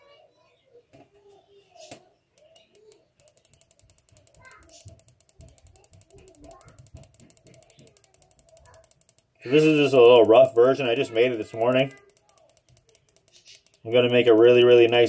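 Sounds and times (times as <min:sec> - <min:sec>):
spark plug ticking: 0:02.4 - 0:15.0.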